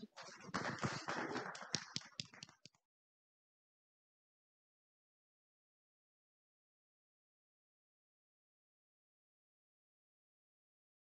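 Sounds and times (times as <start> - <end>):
audience applauding: 0.0 - 2.8.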